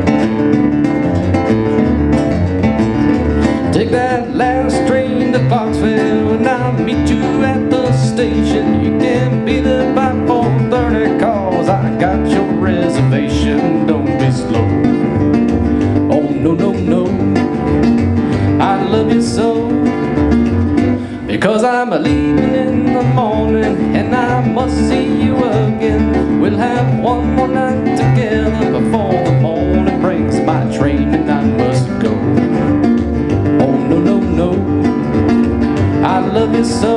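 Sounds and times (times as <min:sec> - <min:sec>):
acoustic guitars picked fingerstyle: 0:00.0 - 0:36.9
washtub bass line: 0:00.0 - 0:36.9.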